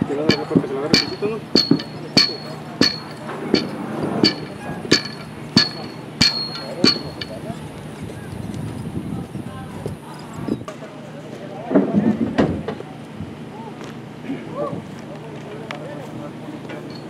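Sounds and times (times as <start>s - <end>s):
murmur of voices: 0.0s - 17.0s
sharp metallic clinks: 0.2s - 8.1s, 16.7s - 17.0s.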